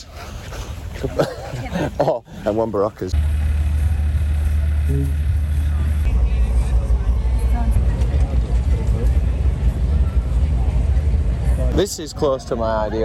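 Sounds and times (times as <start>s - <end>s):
faint voices: 3.6s - 13.0s.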